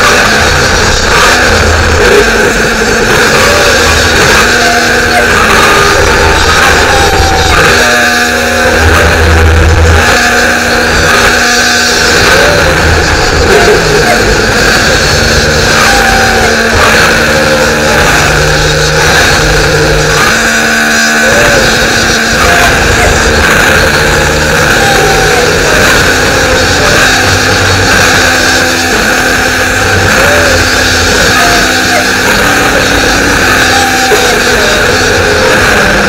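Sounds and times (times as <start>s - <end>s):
distorted electronic music: 0.0s - 36.0s.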